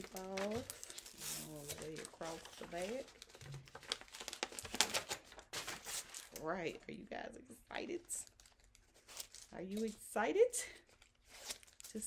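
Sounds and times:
tape being peeled and crumpled: 0.0 - 6.6, 8.0 - 10.1, 10.7 - 12.0.

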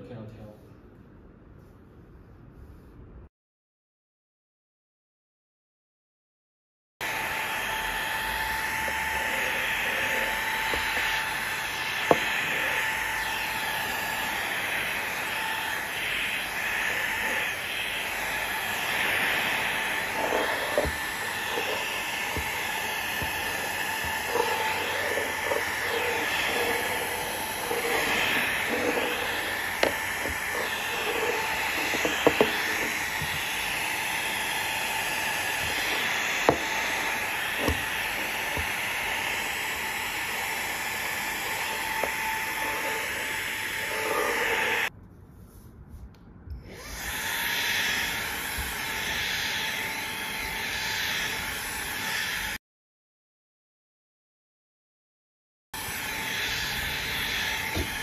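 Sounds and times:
handheld vacuum running: 7.0 - 44.9, 46.6 - 52.6, 55.8 - 58.0.

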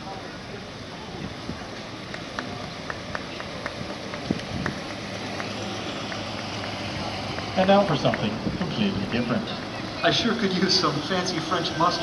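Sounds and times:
cars rolling slowly past: 0.0 - 12.0.

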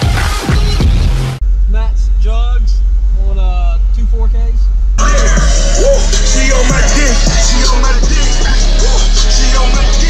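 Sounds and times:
deep rumble: 0.4 - 10.0
man talking: 1.6 - 4.8.

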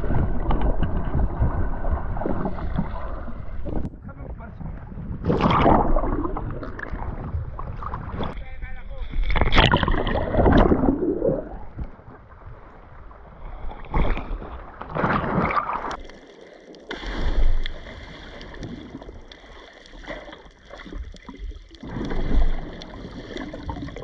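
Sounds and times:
sea water sloshing and splashing: 0.0 - 4.0, 4.6 - 8.4, 9.0 - 24.0.

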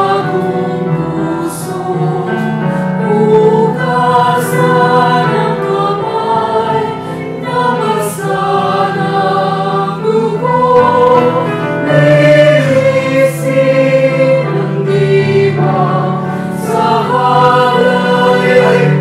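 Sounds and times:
church choir singing a hymn: 0.0 - 19.0.

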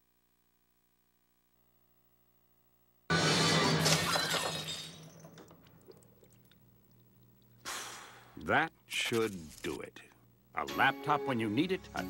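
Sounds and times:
ceramic cup smashing: 3.2 - 6.0.

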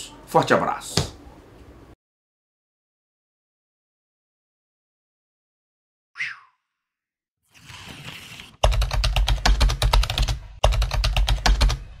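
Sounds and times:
fast keyboard typing: 8.6 - 12.0.

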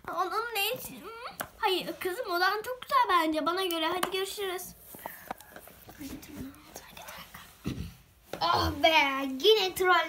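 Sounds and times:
faint whispering: 5.4 - 7.7.

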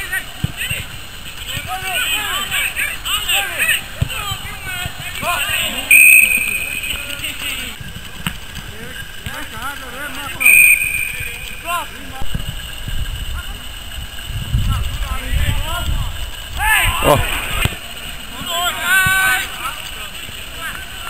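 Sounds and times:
players and onlookers shouting: 0.0 - 7.8, 16.6 - 21.0
whistle blast: 5.8 - 7.8, 10.4 - 12.2
wind rumbling on microphone: 12.2 - 18.2.

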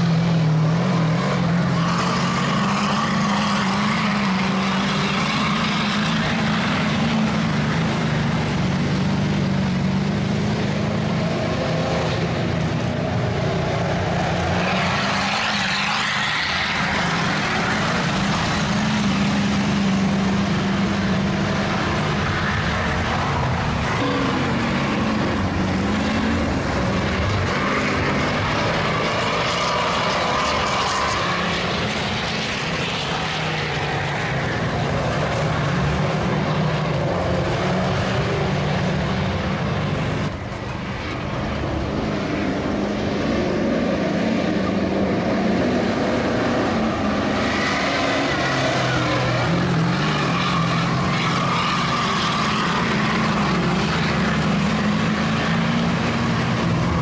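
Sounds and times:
truck engines revving: 0.0 - 57.0.

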